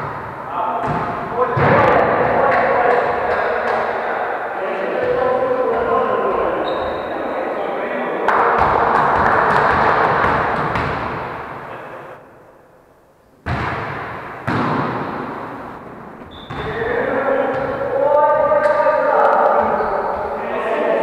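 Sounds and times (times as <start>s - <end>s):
volleyball thuds echoing in hall: 0.0s - 7.4s, 8.2s - 12.5s, 13.4s - 21.0s.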